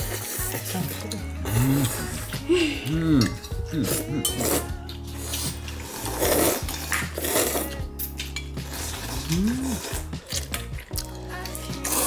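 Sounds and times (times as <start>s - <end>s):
background music: 0.0s - 12.0s
chopsticks stirring noodles in bowl: 0.0s - 12.0s.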